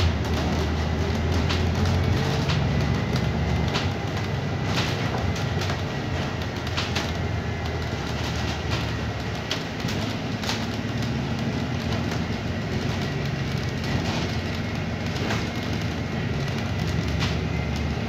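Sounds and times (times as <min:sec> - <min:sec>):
bus drivetrain and road drone: 0:00.0 - 0:18.0.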